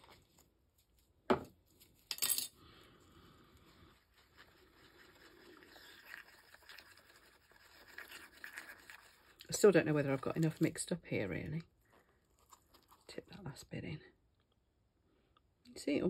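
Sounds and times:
rod scraping mixing cup: 4.0s - 10.8s.

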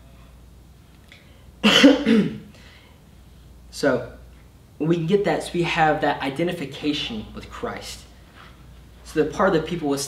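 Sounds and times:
man coughing: 1.6s - 2.5s.

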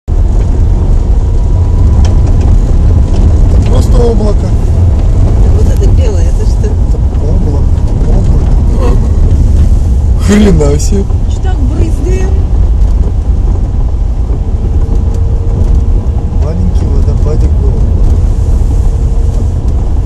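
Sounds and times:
car driving over gravel road: 0.1s - 20.0s.

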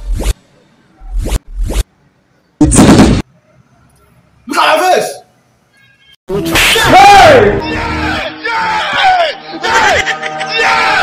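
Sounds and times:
background music: 6.3s - 11.0s.

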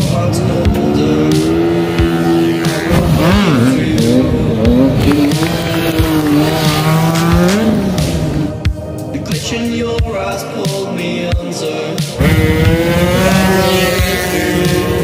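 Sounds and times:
scooter engine at full throttle: 0.0s - 8.6s, 12.2s - 15.0s
background music: 0.0s - 15.0s.

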